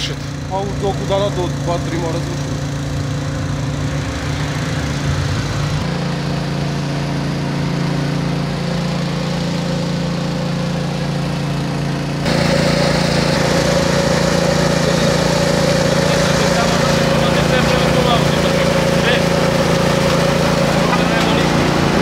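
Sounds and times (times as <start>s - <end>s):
petrol water pump running: 0.0s - 22.0s
water rushing from hose: 0.0s - 22.0s.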